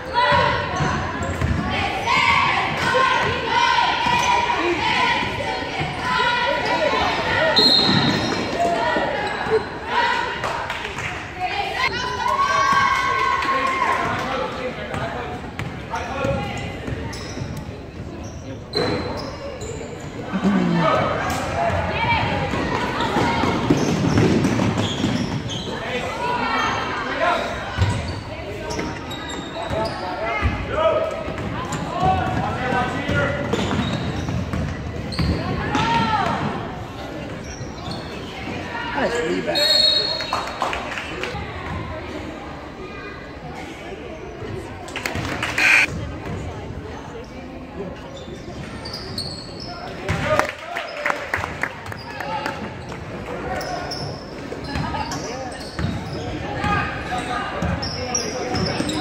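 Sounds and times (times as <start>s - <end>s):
people shouting in a gym: 0.0s - 10.6s, 11.6s - 15.2s, 35.2s - 40.2s.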